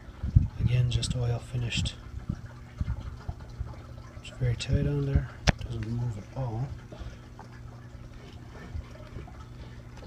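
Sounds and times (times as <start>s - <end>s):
steady low hum: 0.0s - 10.0s
soft handling noise: 5.5s - 10.0s.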